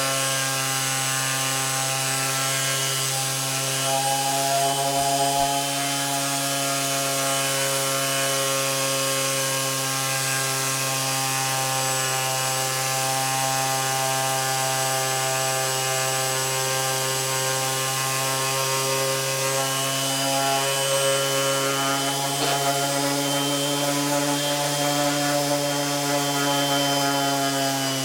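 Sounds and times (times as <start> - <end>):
orbital sander sanding wood: 0.0 - 28.0.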